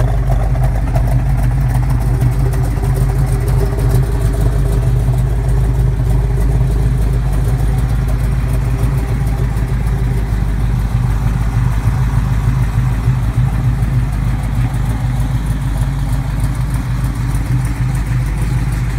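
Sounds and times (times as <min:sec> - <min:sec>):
car engine idling: 0:00.0 - 0:18.9.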